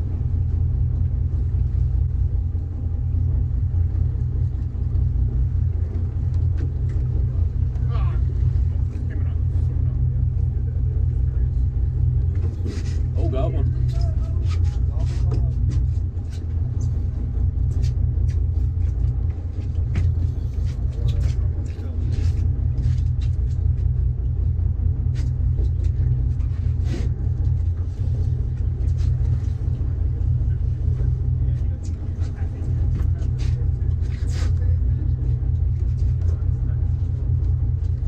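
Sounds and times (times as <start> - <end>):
boat engine rumbling: 0.0 - 38.0.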